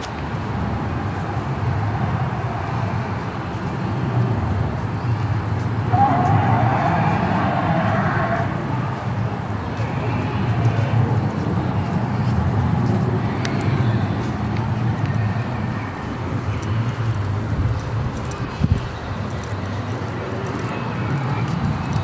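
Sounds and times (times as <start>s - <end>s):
continuous low rumble: 0.0s - 22.0s
recorded dinosaur roar over loudspeaker: 5.9s - 11.3s.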